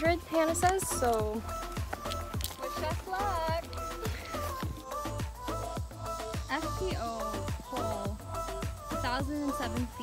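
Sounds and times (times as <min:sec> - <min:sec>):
electronic music with kick drum: 0:00.0 - 0:10.0.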